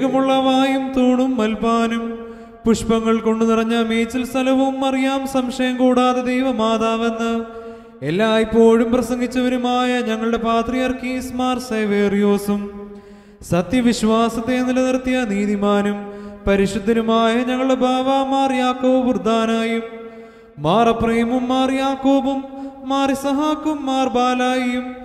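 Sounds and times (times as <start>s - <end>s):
man chanting: 0.0s - 25.0s
breaths: 2.1s - 2.7s, 7.4s - 8.0s, 12.7s - 13.5s, 16.0s - 16.5s, 19.9s - 20.6s, 22.4s - 22.9s.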